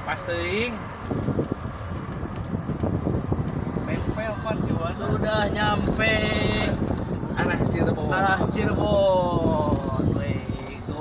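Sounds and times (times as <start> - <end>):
car road noise rumble: 0.0 - 11.0
low bumps: 0.0 - 11.0.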